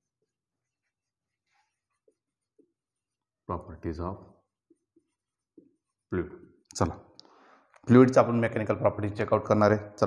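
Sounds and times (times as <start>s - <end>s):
marker writing on whiteboard: 0.0s - 3.4s, 4.4s - 6.1s.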